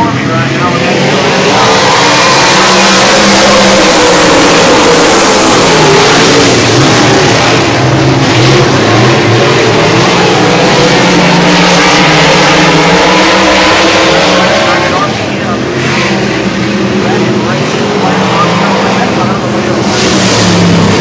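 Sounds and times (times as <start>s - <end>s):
race car engines revving: 0.0s - 21.0s.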